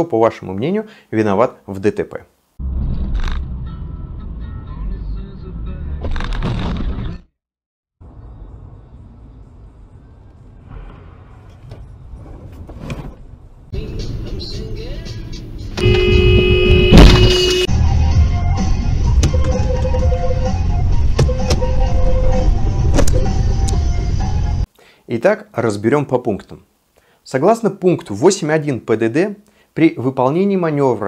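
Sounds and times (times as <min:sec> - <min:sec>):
road noise: 0:08.0 - 0:17.7
car horn held: 0:15.8 - 0:17.7
loud cabin noise: 0:15.8 - 0:17.7
sharp bang: 0:15.8 - 0:17.7.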